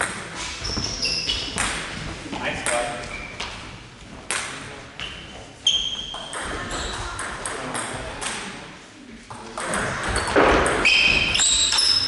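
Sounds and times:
shoes squeaking on floor: 0.4 - 1.7, 2.3 - 3.7, 5.0 - 6.4, 10.1 - 12.0.

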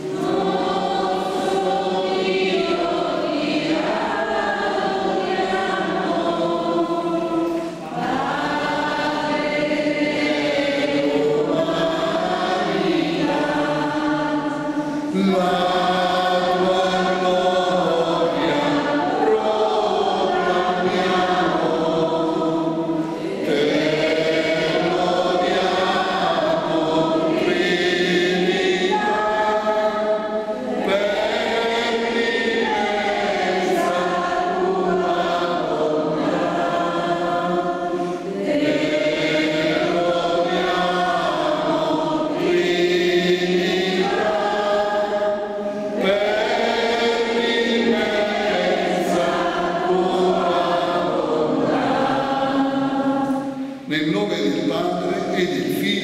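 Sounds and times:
group singing a slow hymn: 0.0 - 56.0.

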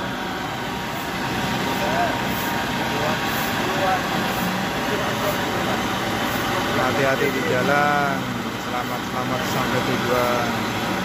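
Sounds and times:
diesel truck engine running: 0.0 - 11.0.

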